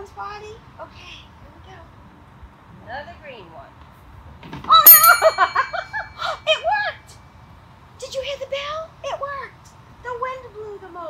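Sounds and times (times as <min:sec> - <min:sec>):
small bell ringing: 0:04.8 - 0:06.4.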